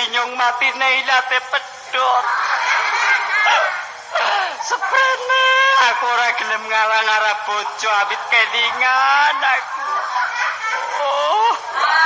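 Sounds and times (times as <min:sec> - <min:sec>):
audience laughing: 0:01.9 - 0:12.0.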